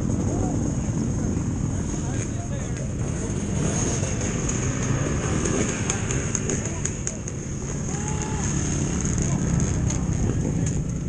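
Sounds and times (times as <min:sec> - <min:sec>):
dirt bike engine at low revs: 0:00.0 - 0:11.0.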